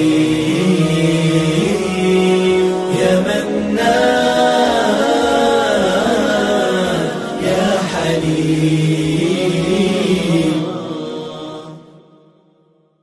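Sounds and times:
voices singing religious song: 0:00.0 - 0:12.5.

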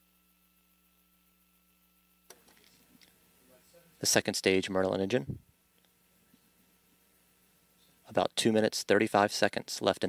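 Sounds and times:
faint background noise: 0:00.0 - 0:10.0
faint electrical hum: 0:00.0 - 0:10.0.

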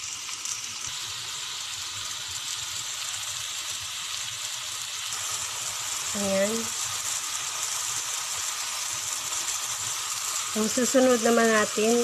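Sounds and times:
vegetables sizzling in hot oil: 0:00.0 - 0:12.0.

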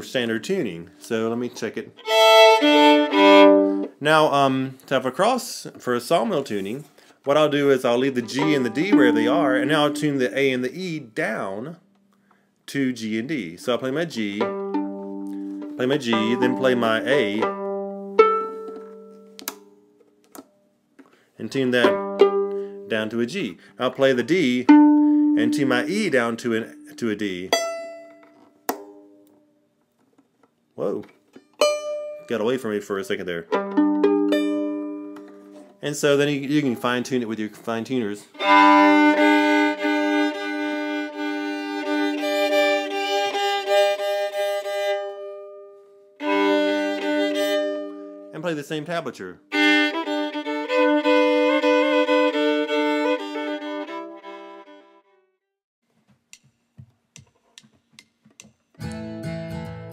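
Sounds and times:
fiddle bowed two-note chords: 0:02.0 - 0:04.0, 0:07.9 - 0:11.8, 0:13.8 - 0:19.4, 0:21.7 - 0:23.5, 0:24.2 - 0:28.3, 0:33.4 - 0:35.6, 0:38.3 - 0:48.4, 0:49.2 - 0:55.3
fiddle string plucked and ringing: 0:08.2 - 0:10.6, 0:33.5 - 0:35.6.

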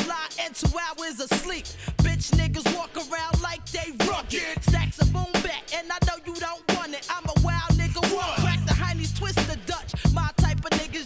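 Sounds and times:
rapping over a drum beat: 0:00.0 - 0:11.0
deep kick drum: 0:01.9 - 0:02.6, 0:04.6 - 0:05.3, 0:07.3 - 0:10.7.

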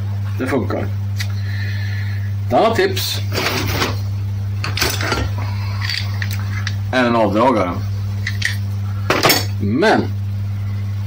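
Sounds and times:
steady low hum: 0:00.0 - 0:11.0
metal tools clinking and scraping: 0:04.6 - 0:06.8.

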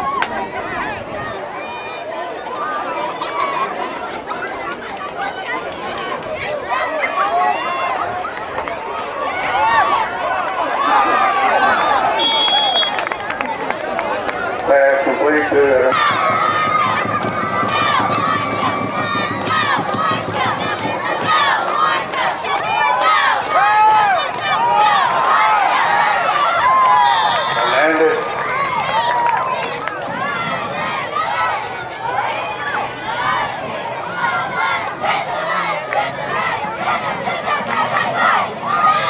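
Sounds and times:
crowd shouting and yelling: 0:00.0 - 0:39.0.

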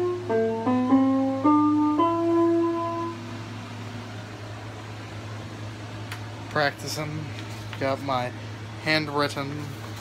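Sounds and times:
electronic keyboard note: 0:00.0 - 0:03.8.

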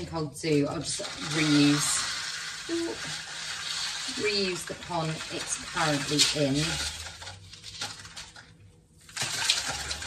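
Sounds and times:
granules pouring and rattling: 0:00.6 - 0:10.0.

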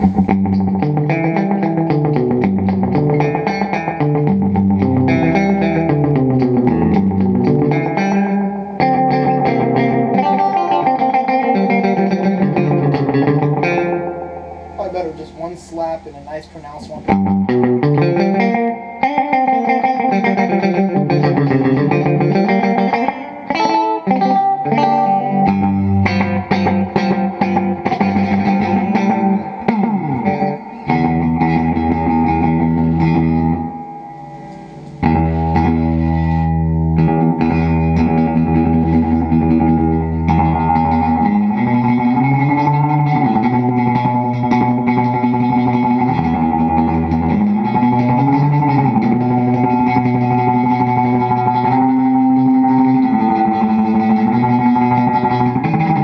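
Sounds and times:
electric guitar with delay echoes: 0:00.0 - 0:56.0.

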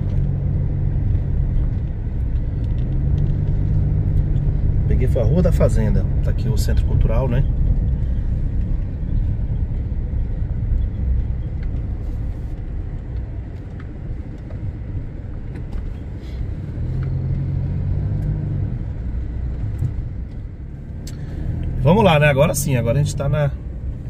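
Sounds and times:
car engine and tyre rumble: 0:00.0 - 0:24.0.

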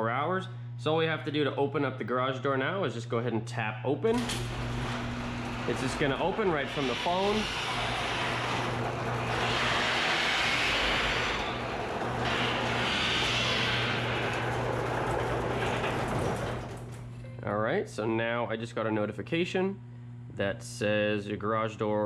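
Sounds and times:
garage door moving on tracks: 0:04.1 - 0:17.2
garage door opener motor hum: 0:04.1 - 0:17.4.

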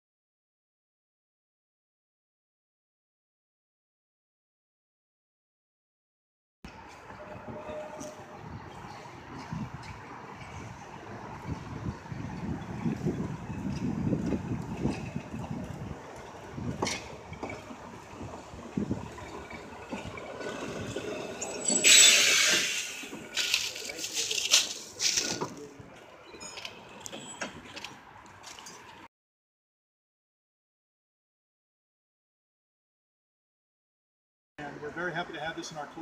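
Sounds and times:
tram wheels rumbling on track: 0:06.7 - 0:29.0
tram clicks: 0:06.7 - 0:29.1
air brake hiss: 0:21.7 - 0:23.1.

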